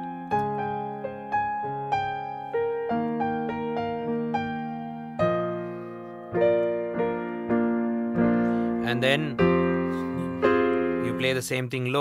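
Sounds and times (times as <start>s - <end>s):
digital piano notes ringing: 0.0s - 12.0s.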